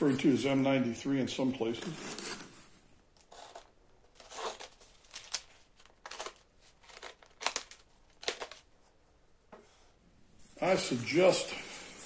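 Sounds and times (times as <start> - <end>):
knife slitting packing tape: 3.2 - 8.6.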